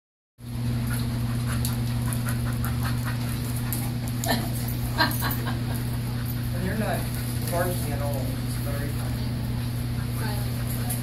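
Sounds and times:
steady low hum: 0.4s - 11.0s
dogs scuffling on vinyl floor: 0.5s - 11.0s.

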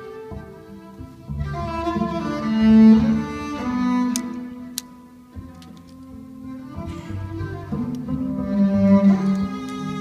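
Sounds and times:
cello notes: 0.0s - 10.0s.

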